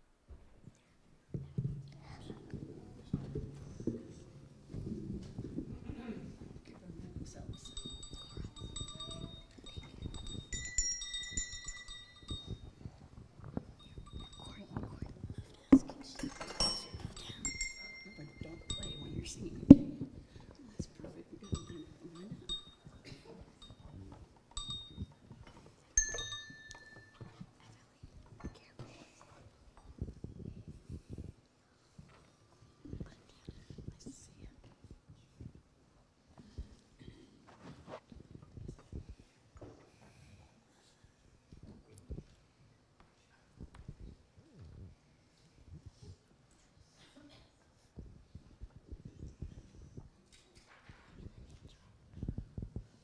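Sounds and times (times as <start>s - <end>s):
handbells ringing: 7.4s - 20.2s, 21.4s - 27.4s.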